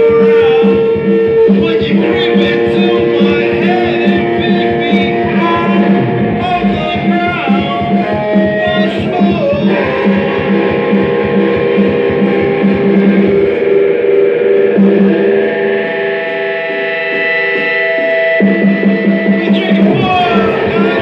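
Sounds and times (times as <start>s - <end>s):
instrumental rock music: 0.0s - 21.0s.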